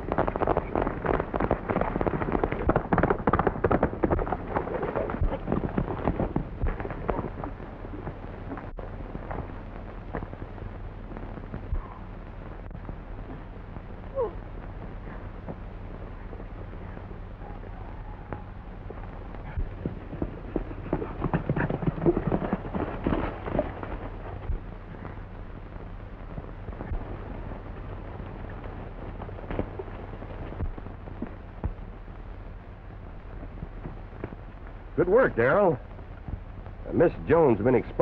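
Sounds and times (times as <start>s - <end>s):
low hum and hiss: 0.0s - 38.0s.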